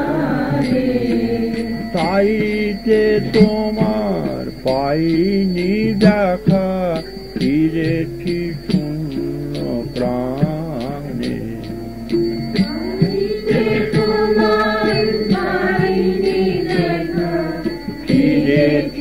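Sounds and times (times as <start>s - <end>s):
light percussion strokes: 0.0s - 19.0s
person singing ornamented notes: 0.0s - 19.0s.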